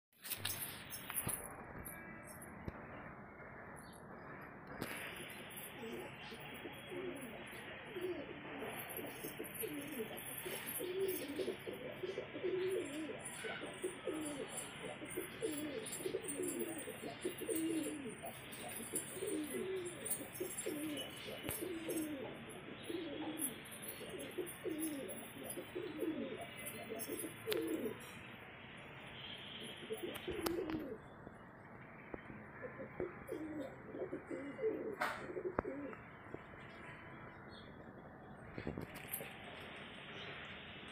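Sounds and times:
pigeons cooing: 4.8s - 28.1s, 29.6s - 31.0s, 32.6s - 36.0s.

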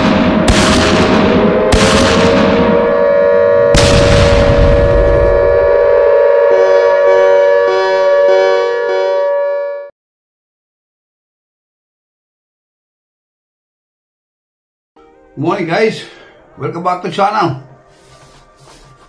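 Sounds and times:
heavy explosion booms: 0.0s - 2.9s, 3.7s - 5.7s
sustained droning tone: 0.0s - 9.9s
pulsing tone: 1.2s - 9.9s.

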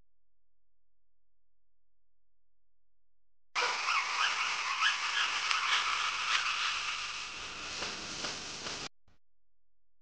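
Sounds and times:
steady hiss: 3.8s - 8.9s.

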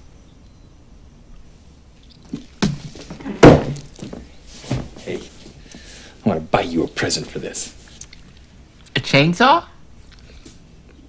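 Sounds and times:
knocks: 2.3s - 4.9s.

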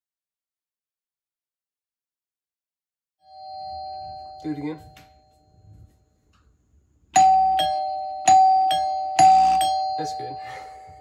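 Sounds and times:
doorbell chime ding-dong: 3.2s - 6.2s, 7.2s - 11.0s.

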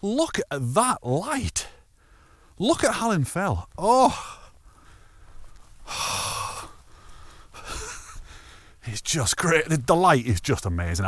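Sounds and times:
man exhaling heavily: 5.8s - 8.8s.

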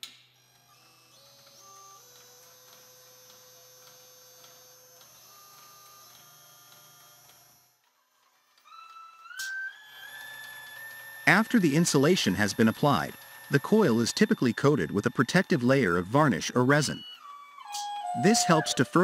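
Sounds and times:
taping machine motor whine: 0.4s - 19.0s.

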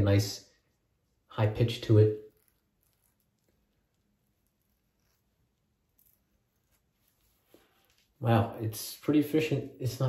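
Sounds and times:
razor scratching stubble: 2.2s - 7.4s.

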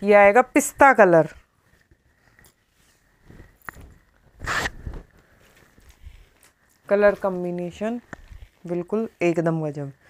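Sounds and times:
cloth rustling: 1.4s - 10.0s.

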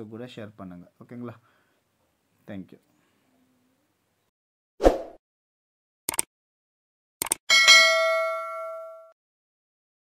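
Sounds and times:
bell chime ding: 7.5s - 9.2s.

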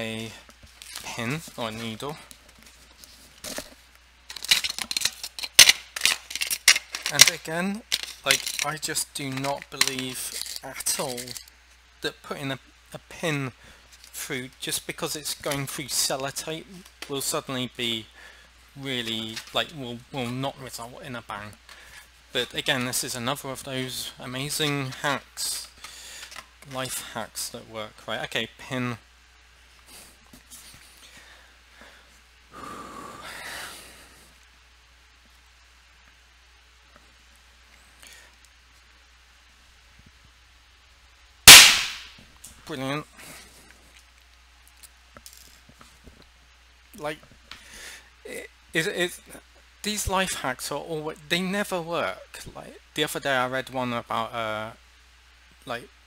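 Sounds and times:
faint handling noises: 0.0s - 11.9s, 18.8s - 27.4s
small items rattling in a box: 4.3s - 11.4s.

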